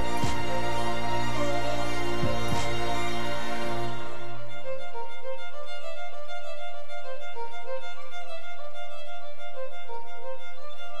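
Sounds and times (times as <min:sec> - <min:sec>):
fiddle playing a tune: 0:00.0 - 0:11.0.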